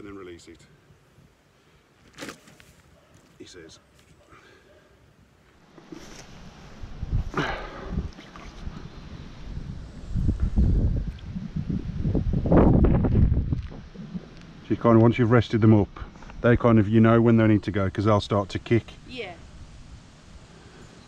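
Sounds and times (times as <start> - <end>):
handling noise on microphone: 5.6 - 7.3.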